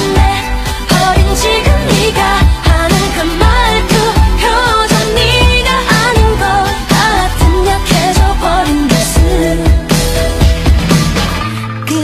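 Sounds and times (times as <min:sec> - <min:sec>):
bass: 0:00.0 - 0:12.0.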